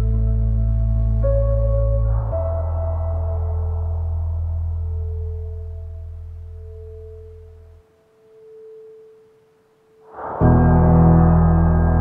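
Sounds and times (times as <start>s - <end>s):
deep low drone: 0.0s - 7.8s, 10.1s - 12.0s
steady pure tone: 0.0s - 12.0s.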